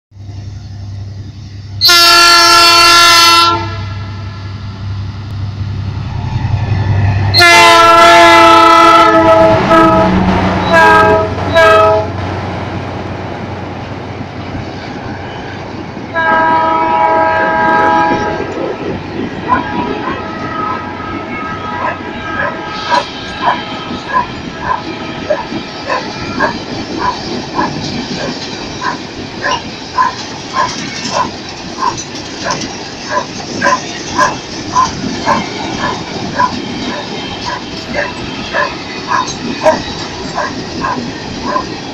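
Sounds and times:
locomotive horn blasts: 1.8 - 4.6, 7.3 - 12.2, 16.1 - 18.6, 19.4 - 26.6
train wheels clacking on rail joints: 21.8 - 41.9.

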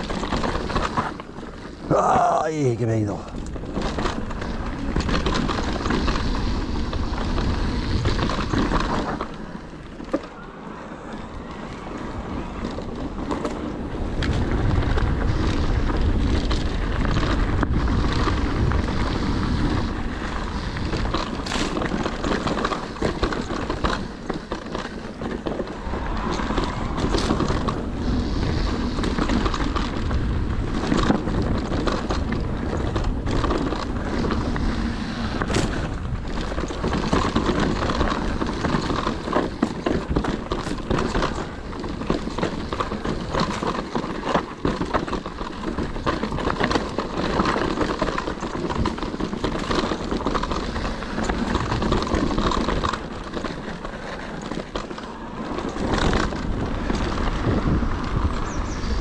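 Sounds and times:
bike frame rattling and knocking: 0.0 - 2.1, 3.3 - 10.3, 14.2 - 27.9, 29.0 - 57.7
wind buffeting microphone: 0.0 - 9.4, 11.2 - 59.0
tyres running over dirt and rock: 0.0 - 58.6.

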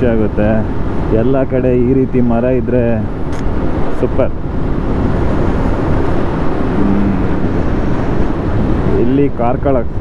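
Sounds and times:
wind rush on microphone: 0.0 - 10.0.

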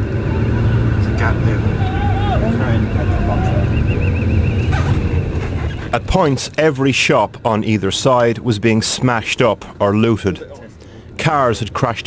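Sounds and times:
car engine and road rumble: 0.0 - 12.0
voices from the street: 0.0 - 12.0.

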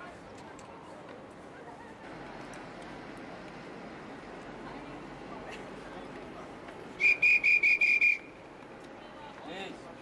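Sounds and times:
whistle short high blasts: 7.0 - 8.3.

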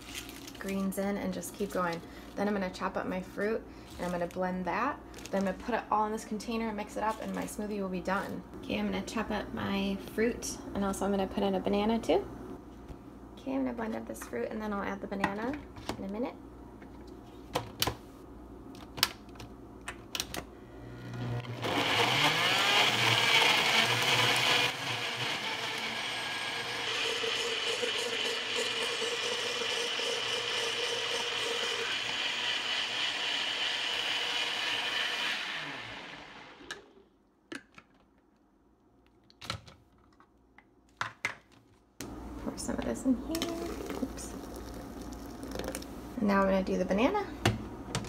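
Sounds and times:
blender running: 20.9 - 37.0.

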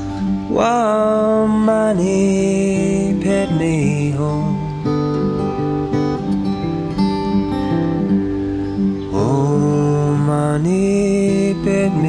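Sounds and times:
acoustic guitar: 0.0 - 12.0
man singing a long wordless note: 0.4 - 5.3, 9.1 - 12.0.

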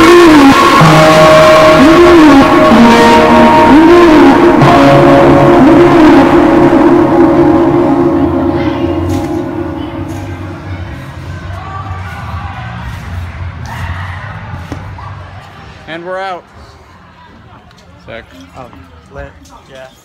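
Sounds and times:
background music: 0.0 - 13.9
low hall ambience: 0.0 - 20.0.

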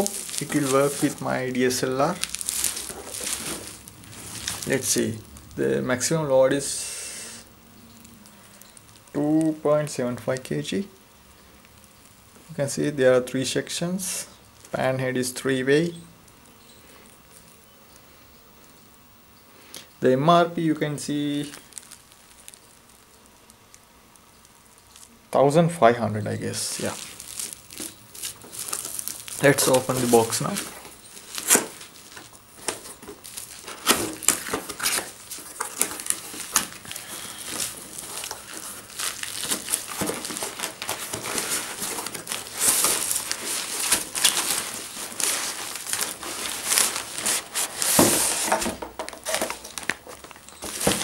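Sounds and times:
cardboard and bubble wrap crinkling: 0.0 - 6.8, 20.8 - 25.2, 26.2 - 51.0
low hiss: 0.0 - 51.0.

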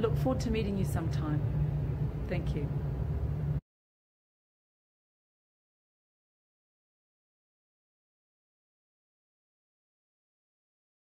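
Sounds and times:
low outdoor rumble: 0.0 - 3.6.

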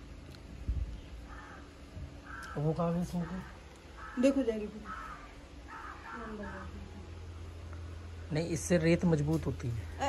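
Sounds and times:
bird calling: 1.0 - 7.2.

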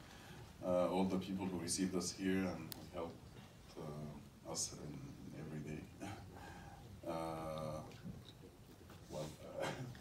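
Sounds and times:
man coughing into microphone: 9.5 - 10.0.

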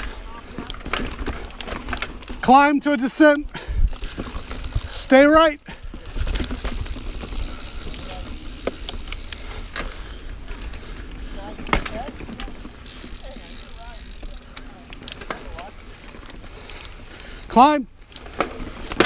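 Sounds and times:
bike rattles and clicks: 0.0 - 19.0
bike tyres on dirt: 0.0 - 19.0.

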